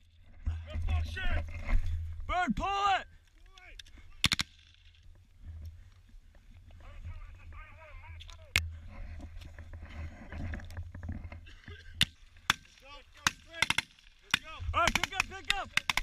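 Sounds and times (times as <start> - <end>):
microphone rumble and rustling: 0.0 - 2.3, 5.1 - 12.0
gunshots: 4.2 - 4.6, 12.5 - 16.0.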